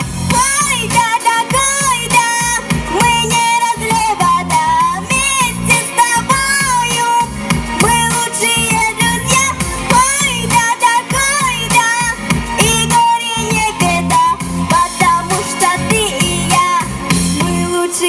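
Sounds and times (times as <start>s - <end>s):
instrumental backing with guitar: 0.0s - 18.0s
girl singing into microphone: 0.3s - 18.0s.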